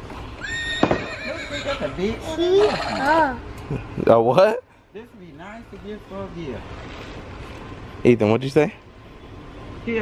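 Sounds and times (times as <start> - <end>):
recorded horse neigh: 0.4 - 2.0.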